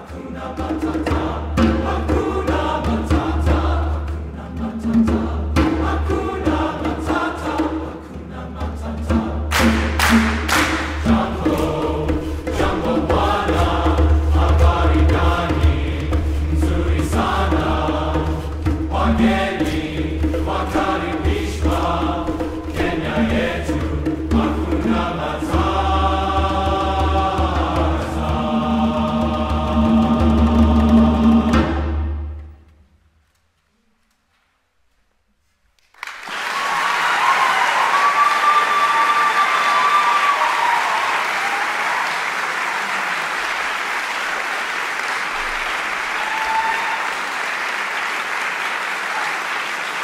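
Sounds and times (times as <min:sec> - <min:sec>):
men's chorus singing: 0:00.0 - 0:32.0
bongos: 0:08.9 - 0:32.6
sharp claps: 0:09.5 - 0:11.1, 0:35.8 - 0:50.0.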